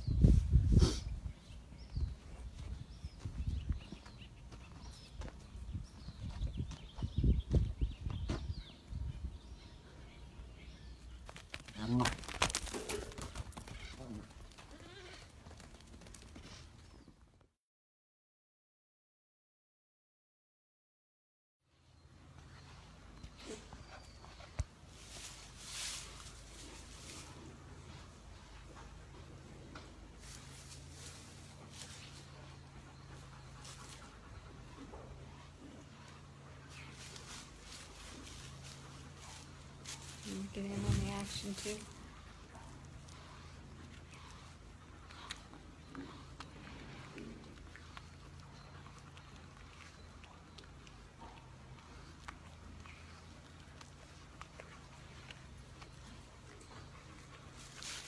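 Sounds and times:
young goat bleating: 14.7s - 15.2s
calf sucking and chewing: 22.5s - 58.0s.

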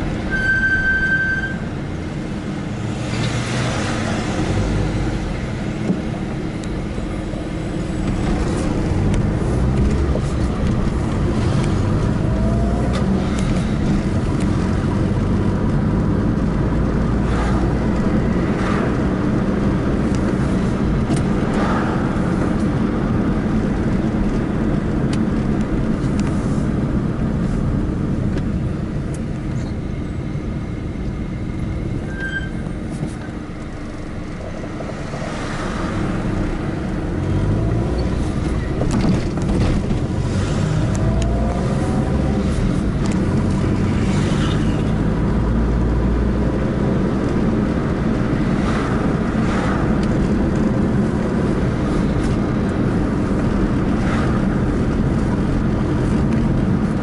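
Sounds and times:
car engine and road rumble: 0.0s - 57.0s.

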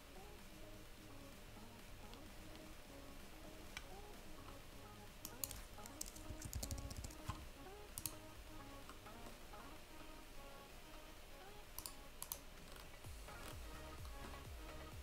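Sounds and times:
faint background music: 0.0s - 15.0s
keyboard typing: 1.1s - 10.2s, 11.4s - 15.0s
mouse clicks: 5.2s - 7.4s, 8.0s - 8.3s, 11.7s - 12.9s.

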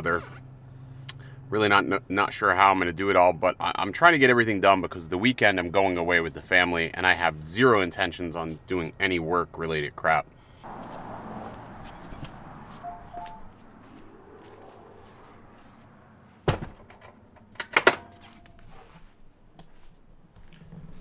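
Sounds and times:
door thunk: 16.5s - 17.0s.

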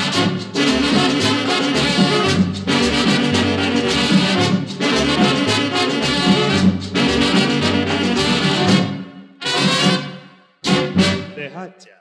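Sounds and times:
merengue band with horns and drums: 0.0s - 11.7s.

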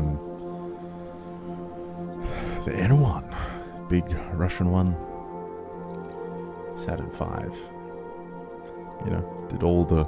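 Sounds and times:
slow background music: 0.0s - 10.0s.

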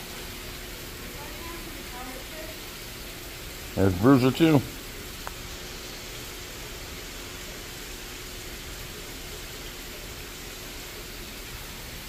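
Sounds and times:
water pouring into pond: 0.0s - 12.0s
man talking: 3.8s - 4.8s.

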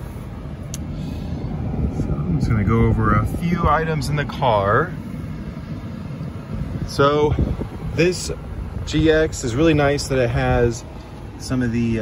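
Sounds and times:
car engine idling: 0.0s - 12.0s
climate-control fan running: 0.0s - 12.0s.

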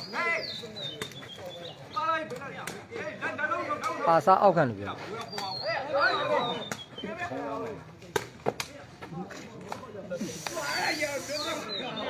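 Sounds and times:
players calling out: 4.8s - 8.0s.

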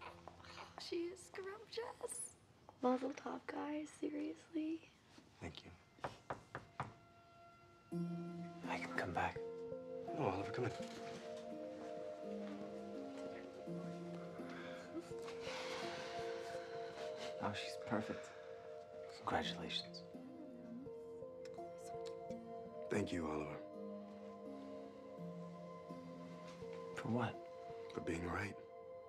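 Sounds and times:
soft dramatic background score: 2.8s - 29.0s.

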